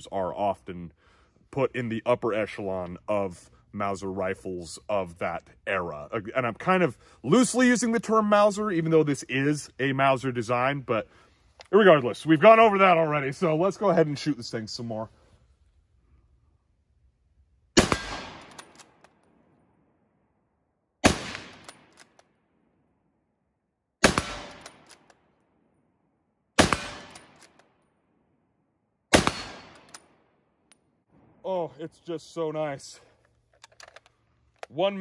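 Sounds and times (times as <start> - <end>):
rifle shots with echo: 17.8 - 19.0, 21.0 - 21.9, 24.0 - 25.1, 26.6 - 27.5, 29.1 - 30.3.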